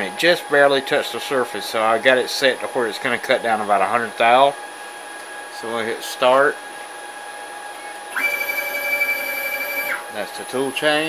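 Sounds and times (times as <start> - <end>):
cnc router whining: 7.1 - 11.0.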